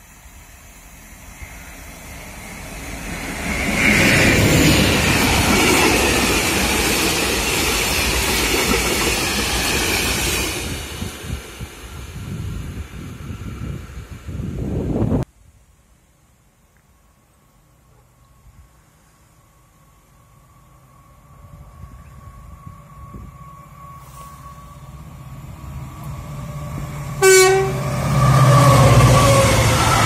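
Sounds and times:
diesel locomotive passing: 0.0s - 15.2s, 17.0s - 30.0s.

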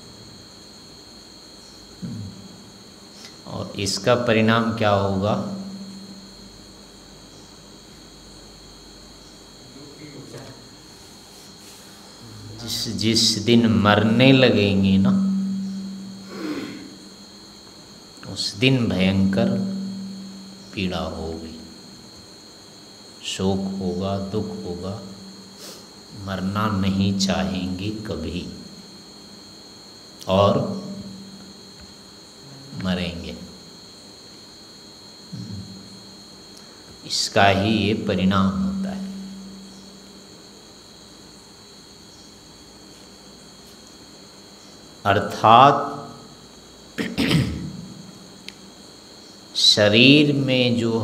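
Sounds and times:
faint hiss: 0.0s - 51.0s
man speaking: 12.2s - 15.4s, 18.2s - 19.8s, 26.2s - 28.6s, 30.3s - 30.9s, 32.6s - 33.5s, 37.1s - 39.1s, 45.1s - 46.1s.

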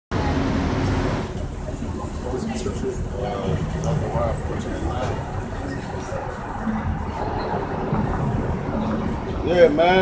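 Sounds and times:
road traffic noise: 0.1s - 10.0s.

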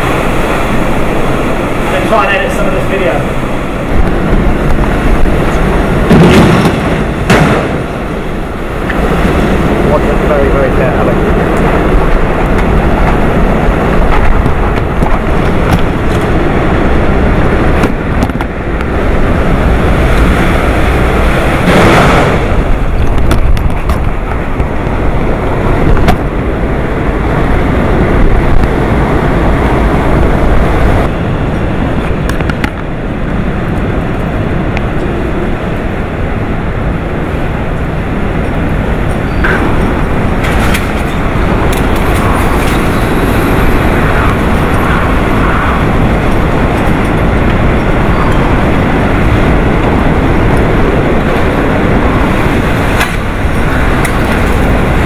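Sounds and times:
driving rain: 0.0s - 55.0s
strong wind gusts buffeting microphone: 0.0s - 55.0s.

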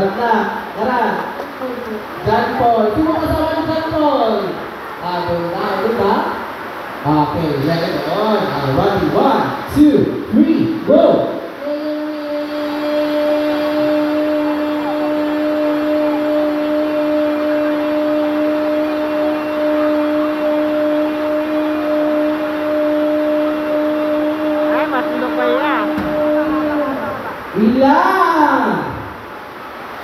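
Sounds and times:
child holding long note: 11.6s - 27.6s.

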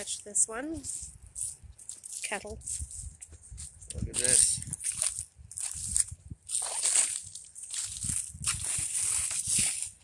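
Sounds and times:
footsteps crunching dry leaves: 0.8s - 10.0s.

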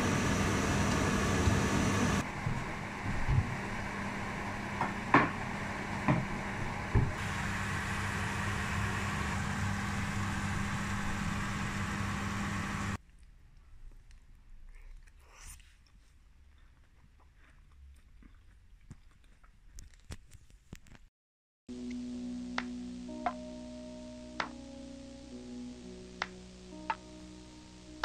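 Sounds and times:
mechanical hum with hiss: 0.0s - 13.0s.

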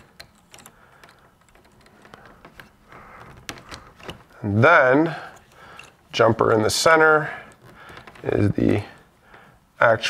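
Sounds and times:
wires clicking and rustling: 0.0s - 9.9s.

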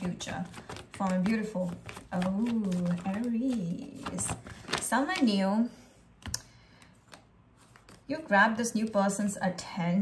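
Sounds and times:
cards being shuffled: 0.0s - 5.4s, 6.2s - 8.3s.

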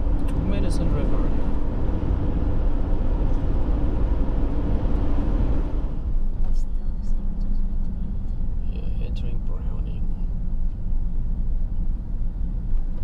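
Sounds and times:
car engine and tyre noise: 0.0s - 13.0s.

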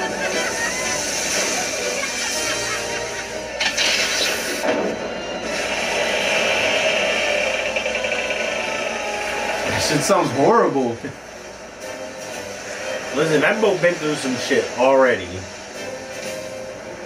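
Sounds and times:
sound effects: 0.0s - 10.2s
background music: 0.0s - 17.0s.

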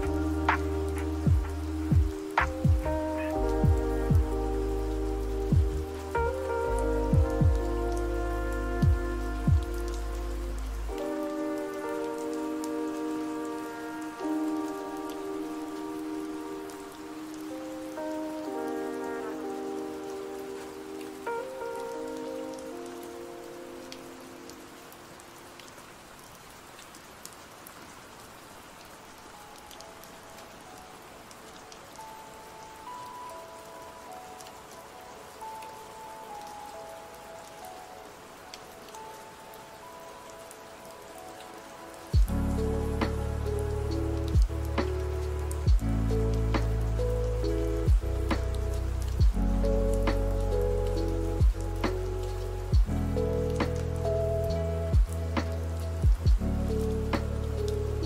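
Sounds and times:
lofi hip-hop music: 0.0s - 22.7s, 42.2s - 57.8s
steady rain: 0.0s - 58.0s.

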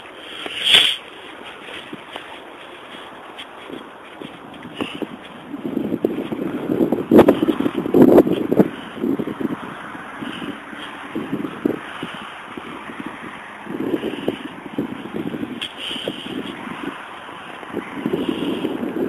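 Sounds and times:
sharp crackles of stems: 0.0s - 5.5s, 15.5s - 18.6s
dry grass rustling against camera: 0.0s - 19.0s.

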